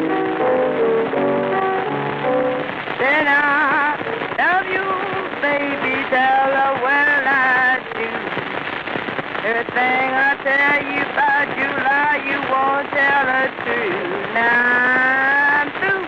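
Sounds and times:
blues piano: 0.0 - 16.0
record surface crackle and hiss: 0.0 - 16.0
woman singing with vibrato: 2.9 - 8.4, 9.4 - 16.0.

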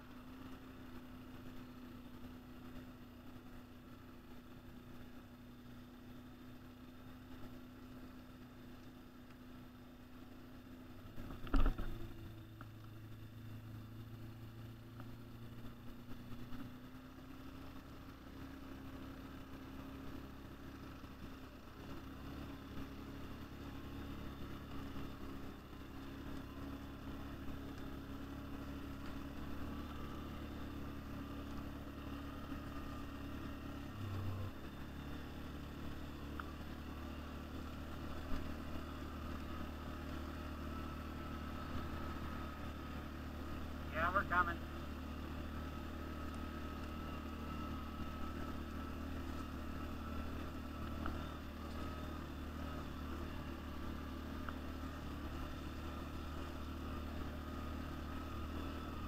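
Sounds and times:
atv engine running: 0.0 - 59.0.

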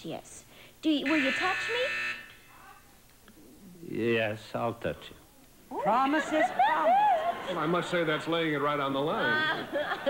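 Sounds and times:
man speaking: 3.6 - 5.4.

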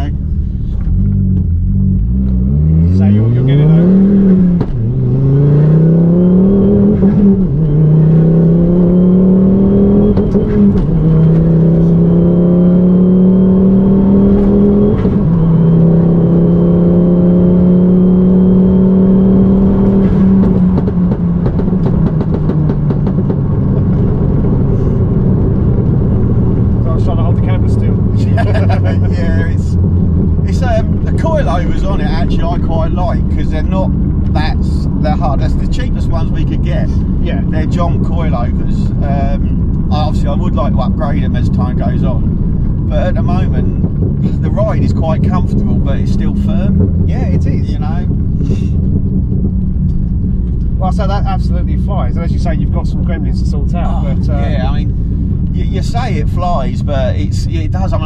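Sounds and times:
car engine accelerating: 0.0 - 58.0.

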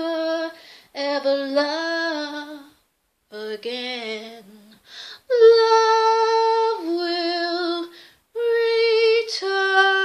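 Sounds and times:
woman singing unaccompanied: 0.0 - 10.0
short breath: 0.6 - 0.9, 4.8 - 5.2, 7.9 - 8.3.

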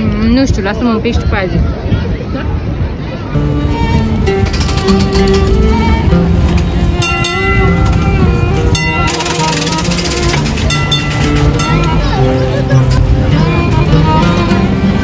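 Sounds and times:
instrumental music with held strings: 2.5 - 15.0.

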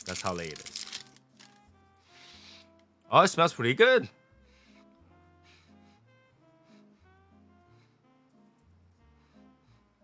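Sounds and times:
faint background music: 0.0 - 10.0
breathy sniff: 2.0 - 2.8, 4.5 - 8.1.

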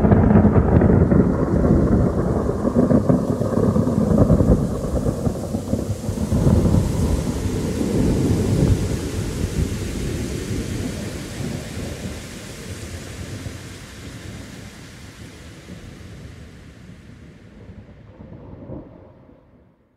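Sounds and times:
steady rain: 0.0 - 19.5
rolling thunder: 0.0 - 19.7.

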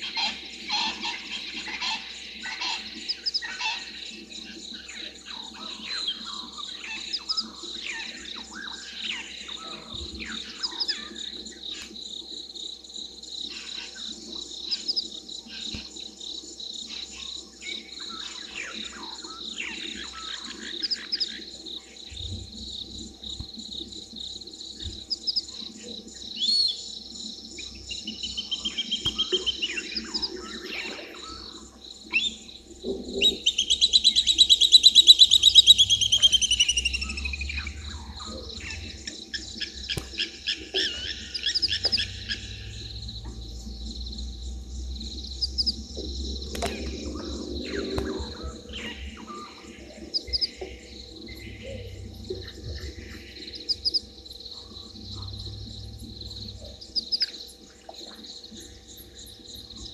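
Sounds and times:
birds calling: 0.0 - 12.3, 13.1 - 59.9
high insect drone: 0.0 - 59.9.

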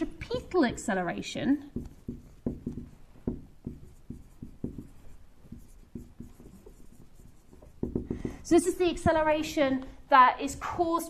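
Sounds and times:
marker writing on whiteboard: 0.0 - 9.6.

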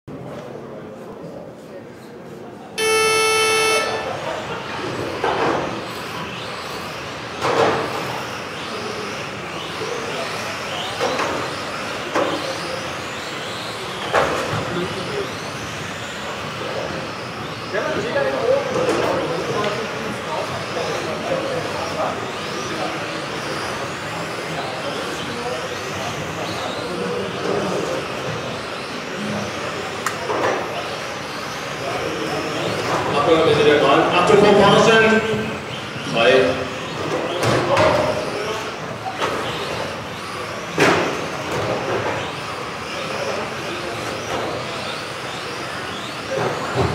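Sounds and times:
electronic start tone: 2.8 - 4.5
remote control car motors whining: 2.8 - 46.9.

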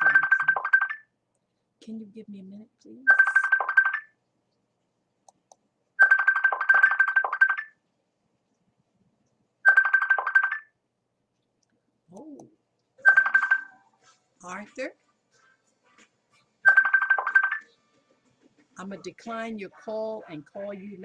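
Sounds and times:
mobile phone ringtone: 0.0 - 0.9, 3.1 - 3.9, 6.0 - 7.6, 9.7 - 10.7, 13.0 - 14.0, 16.7 - 17.8.

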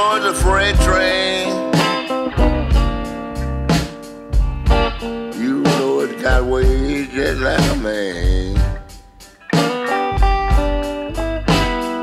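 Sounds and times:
blues electric guitar: 0.0 - 12.0
beat of low thumps: 2.4 - 3.8, 4.4 - 5.1, 6.3 - 9.0.

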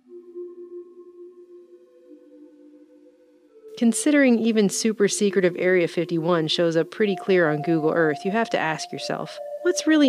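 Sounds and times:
soft ambient music drone: 0.0 - 10.0
person narrating: 3.8 - 10.0.

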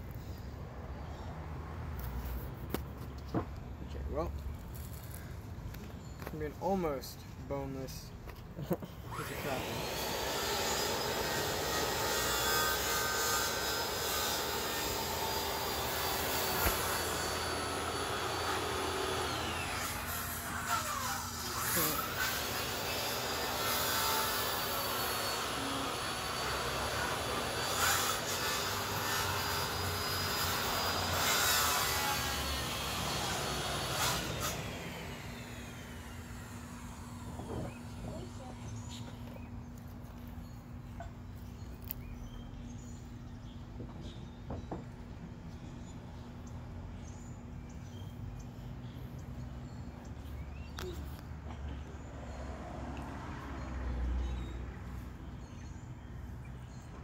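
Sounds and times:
engine droning with whine: 9.1 - 31.3, 32.0 - 57.0.

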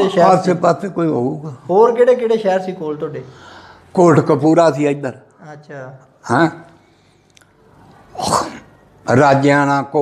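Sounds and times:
person sneezing: 8.1 - 8.7.

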